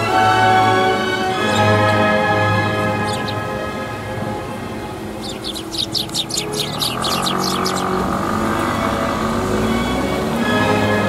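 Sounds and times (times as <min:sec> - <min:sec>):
background music with held notes: 0:00.0 - 0:11.0
sparrows chirping: 0:01.3 - 0:10.5.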